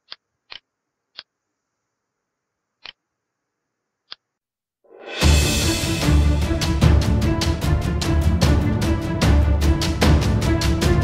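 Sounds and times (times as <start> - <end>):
computer mouse clicking: 2.8 - 3.0.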